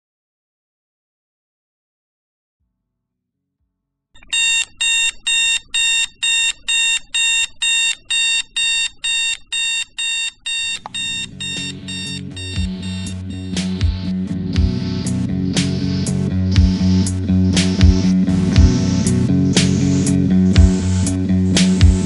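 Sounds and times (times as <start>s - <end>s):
alarm clock beeping: 4.2s - 14.7s
band music with guitar and drums: 11.3s - 22.0s.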